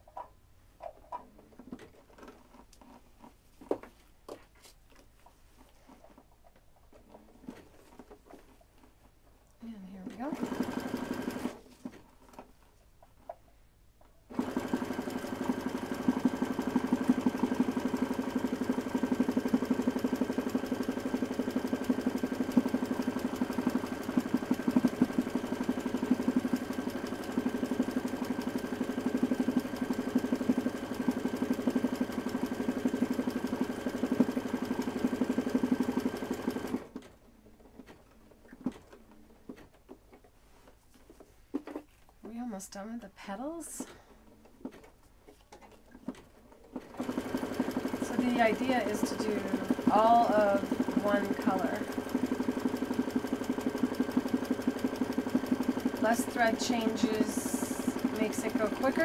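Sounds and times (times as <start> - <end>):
sewing machine stitching: 10.1 - 12.3, 14.3 - 40.2, 43.8 - 59.0.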